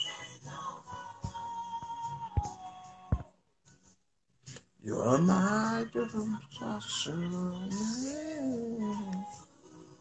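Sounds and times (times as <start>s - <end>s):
man singing slowly: 4.8s - 9.4s.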